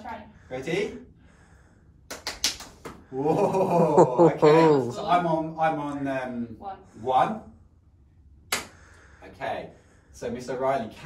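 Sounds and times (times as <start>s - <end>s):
hand claps: 2.1s - 3.0s, 8.5s - 8.8s.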